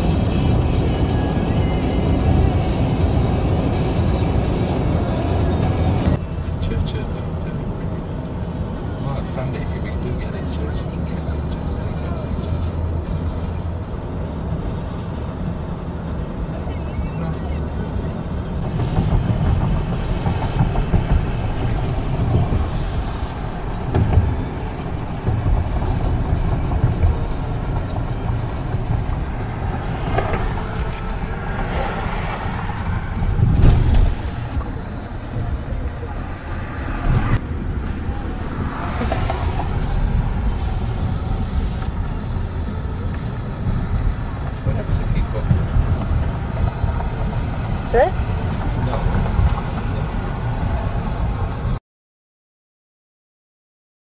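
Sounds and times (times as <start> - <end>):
music: 0.0 - 6.2
car road and engine rumble: 0.0 - 51.8.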